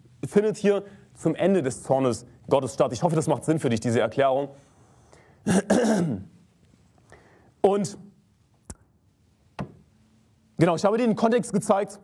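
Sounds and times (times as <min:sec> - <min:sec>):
man clearing throat: 0:05.4 - 0:06.4.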